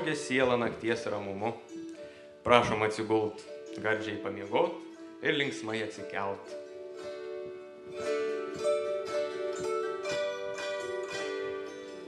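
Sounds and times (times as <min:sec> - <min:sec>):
plucked string instrument: 0:00.0 - 0:12.0.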